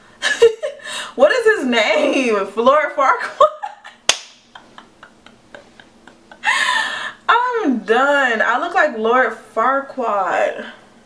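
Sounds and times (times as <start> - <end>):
hand clap: 4.1 - 4.5.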